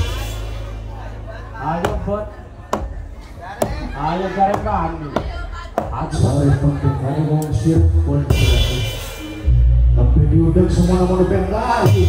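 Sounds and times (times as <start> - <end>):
man speaking over sound system: 0.9 - 2.5, 5.8 - 9.1, 9.7 - 12.0.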